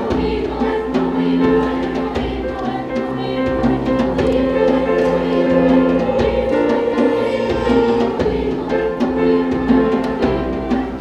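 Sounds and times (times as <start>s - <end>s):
choir singing: 0.0s - 11.0s
piano: 0.0s - 11.0s.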